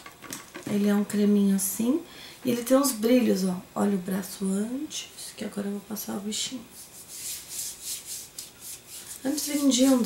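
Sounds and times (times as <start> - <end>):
hand rubbing cream into skin: 6.8 - 10.0.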